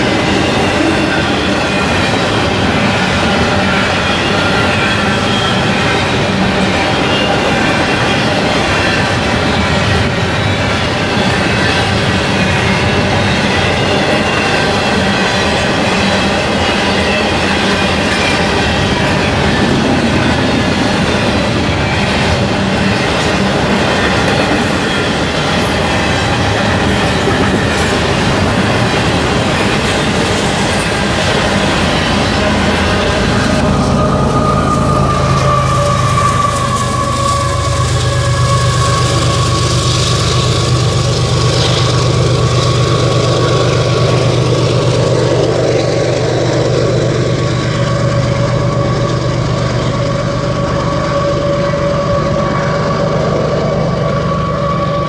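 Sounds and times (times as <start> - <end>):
freight train wheels rushing on rails: 0.0 - 55.0
wheel squeals: 0.0 - 55.0
falling high tone: 31.8 - 40.9.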